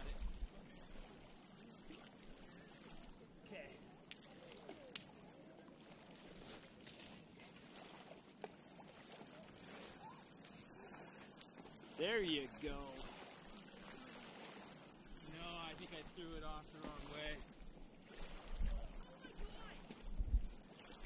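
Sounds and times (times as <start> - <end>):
waves lapping on pebbles: 0.0 - 21.0.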